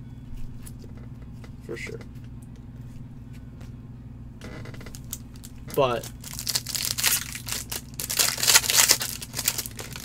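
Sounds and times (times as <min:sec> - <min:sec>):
foil wrapper crinkling and tearing: 0:04.9 - 0:10.0.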